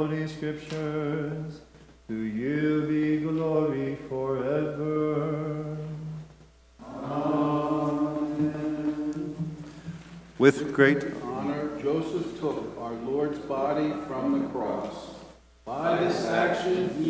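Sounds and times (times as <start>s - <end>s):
man chanting: 10.4s - 17.0s.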